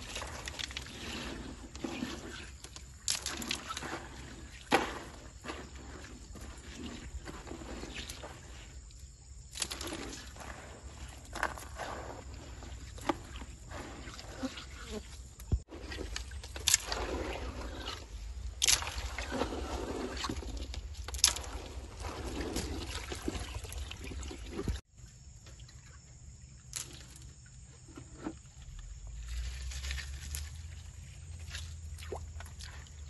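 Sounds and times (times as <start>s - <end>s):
water splashing: 0.0s - 24.8s, 29.1s - 33.0s
gravel scraping in a pan: 0.0s - 24.9s, 27.8s - 33.0s
running water rumble: 0.0s - 24.9s
water splash: 15.5s - 24.8s.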